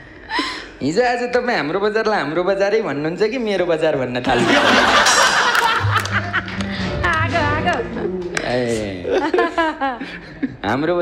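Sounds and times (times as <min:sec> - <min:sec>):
studio laughter: 0:04.3 - 0:06.8.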